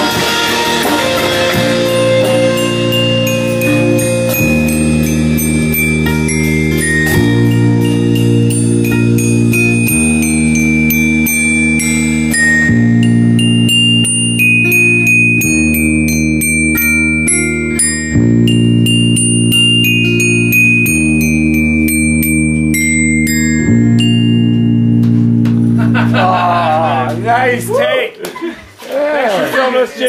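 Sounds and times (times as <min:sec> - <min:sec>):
low held chords: 0:00.0 - 0:28.1
toy glockenspiel melody: 0:00.5 - 0:27.7.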